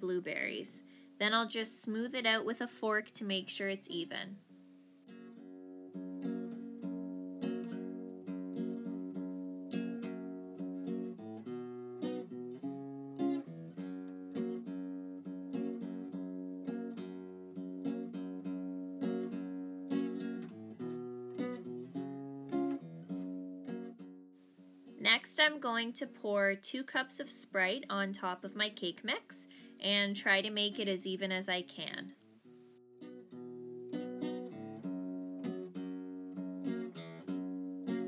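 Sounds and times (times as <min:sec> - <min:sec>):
acoustic guitar plucked notes: 0:00.0 - 0:38.0.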